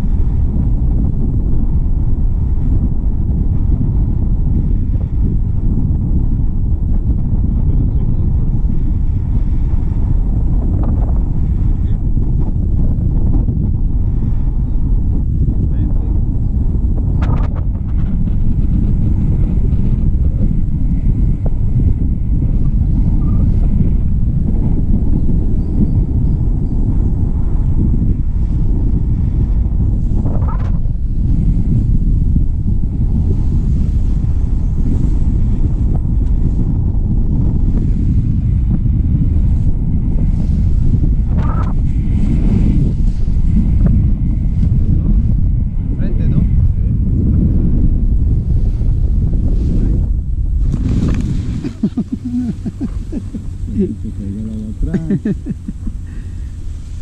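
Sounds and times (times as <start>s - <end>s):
wind rumble on microphone: 0.0s - 57.0s.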